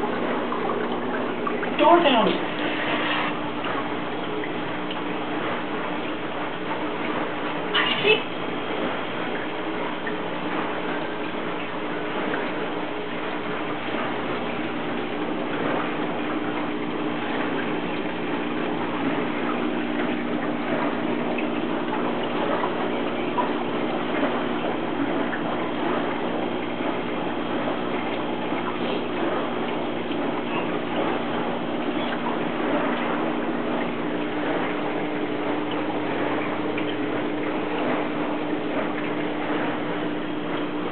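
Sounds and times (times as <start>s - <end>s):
electric pump hum: 0.0s - 40.9s
water moving and bubbling: 0.0s - 40.9s.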